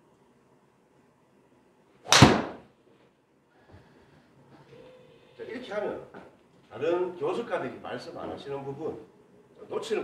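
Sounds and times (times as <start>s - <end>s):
golf club striking ball: 2.1s - 2.6s.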